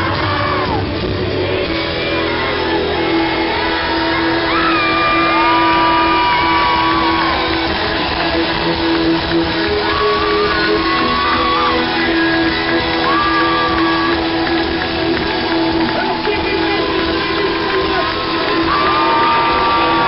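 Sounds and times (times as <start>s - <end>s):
crowd shouting along: 0.0s - 20.0s
live rock band playing: 0.0s - 20.0s.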